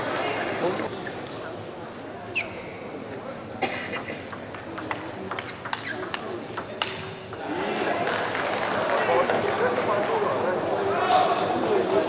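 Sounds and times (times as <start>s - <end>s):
table tennis ball clicking: 4.3s - 7.4s.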